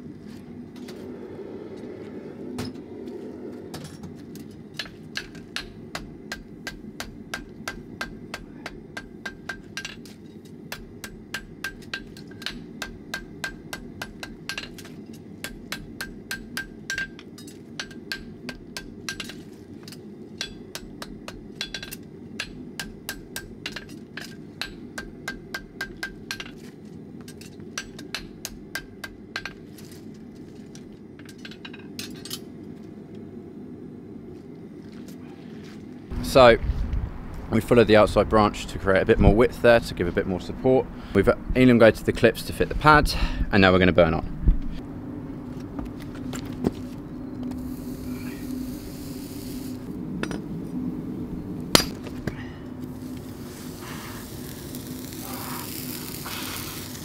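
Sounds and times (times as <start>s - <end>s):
hammer striking horseshoe on anvil: 4.8s - 26.6s, 27.2s - 29.6s, 51.7s - 52.4s.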